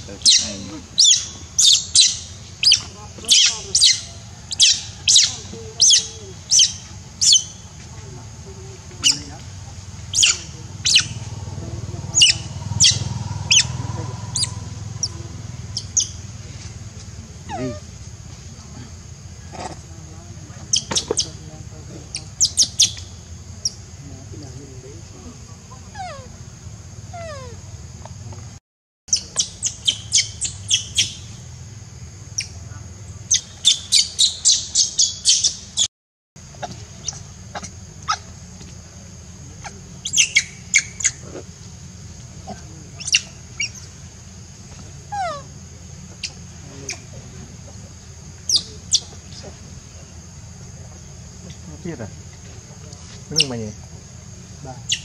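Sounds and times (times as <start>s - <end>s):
animal chirps and squeaks: 0.0s - 7.8s, 9.0s - 9.4s, 10.0s - 11.4s, 12.0s - 16.2s, 20.7s - 21.4s, 22.1s - 23.8s, 29.1s - 31.3s, 33.3s - 35.9s, 36.6s - 38.3s, 39.6s - 41.4s, 43.0s - 44.0s, 45.1s - 45.5s, 48.5s - 49.4s
falling whistle-like calls: 0.0s - 7.8s, 9.0s - 16.4s, 33.3s - 35.9s, 40.0s - 41.2s
steady low rumble: 0.0s - 28.6s.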